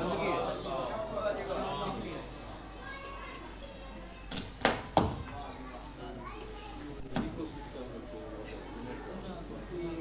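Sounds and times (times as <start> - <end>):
crowd murmuring: 0.0 - 2.7
children's voices: 2.3 - 7.8.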